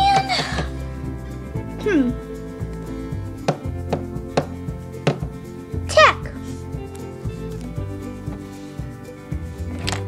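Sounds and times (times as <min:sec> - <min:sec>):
background music with held tones: 0:00.0 - 0:10.0
sharp knocks: 0:03.4 - 0:05.5.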